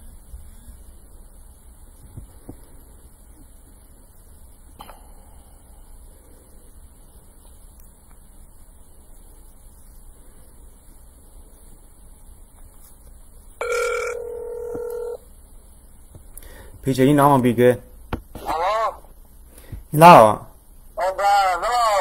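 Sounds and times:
low background hum: 0:00.0 - 0:22.0.

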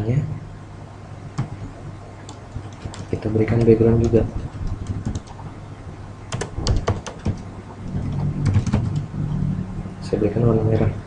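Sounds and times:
computer keyboard typing: 0:01.4 - 0:01.6, 0:02.3 - 0:05.4, 0:06.3 - 0:09.1.

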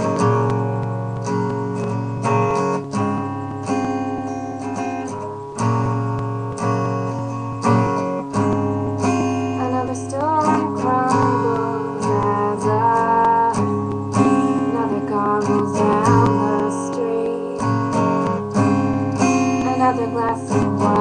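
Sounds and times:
acoustic guitar strumming chords: 0:00.0 - 0:21.0.

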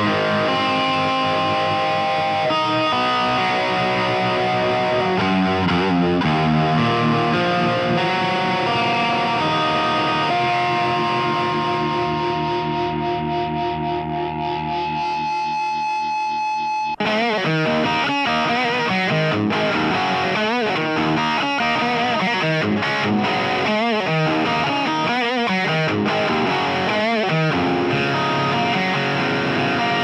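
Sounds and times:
distorted electric guitar rock: 0:00.0 - 0:30.0.

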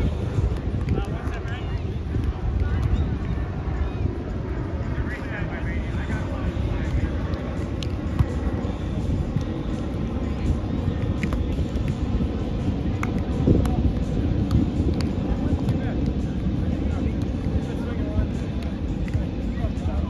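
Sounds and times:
faint voices: 0:00.0 - 0:20.0
wind buffeting microphone: 0:00.0 - 0:20.0
light sharp clicks: 0:18.6 - 0:19.3.

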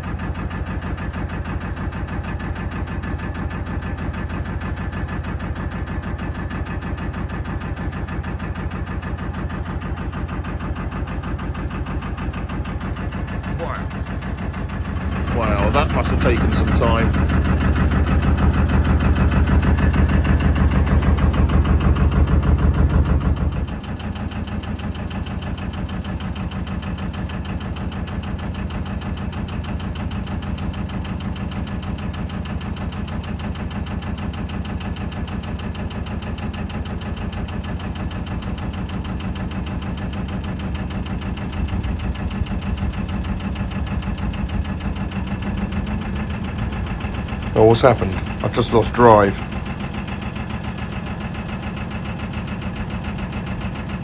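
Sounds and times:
boat engine running steadily: 0:00.0 - 0:54.0.

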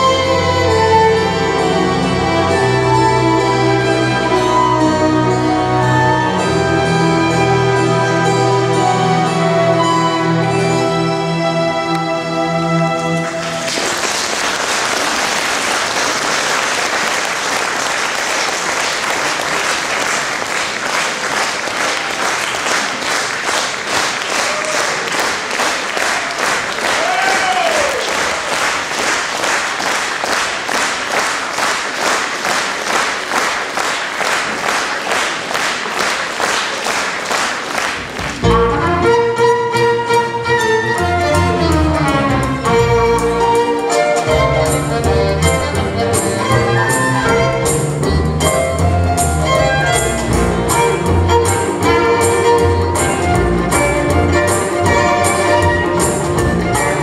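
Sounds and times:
audience clapping in unison: 0:13.0 - 0:38.7.

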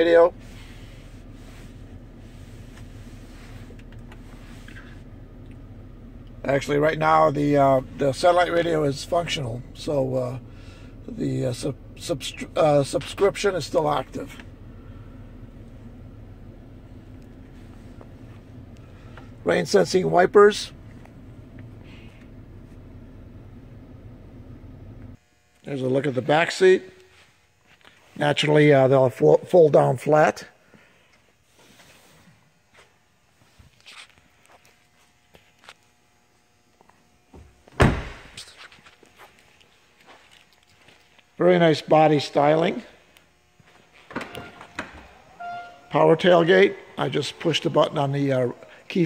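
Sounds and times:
car cabin hum: 0:00.1 - 0:25.2
faint shuffling and clicks: 0:00.6 - 0:05.6, 0:38.4 - 0:41.3
car door shutting: 0:37.4 - 0:38.4.

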